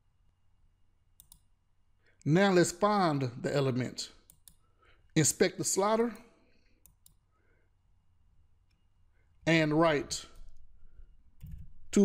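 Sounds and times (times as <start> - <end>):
faint computer mouse clicks: 1.2 - 1.5, 4.3 - 4.6, 6.8 - 7.2
person speaking: 2.2 - 4.3, 5.2 - 6.3, 9.4 - 10.5, 11.4 - 12.0.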